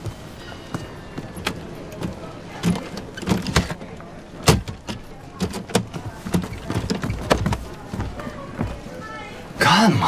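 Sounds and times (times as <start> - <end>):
luggage bins opening: 1.4 - 3.8.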